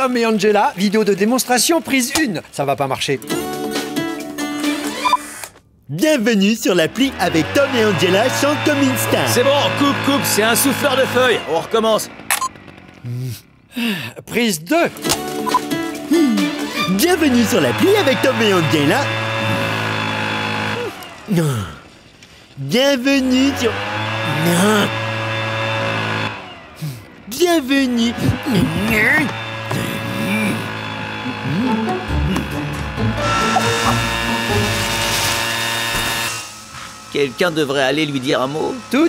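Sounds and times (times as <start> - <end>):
leaf blower engine drone: 0.0 - 5.5, 6.6 - 39.0.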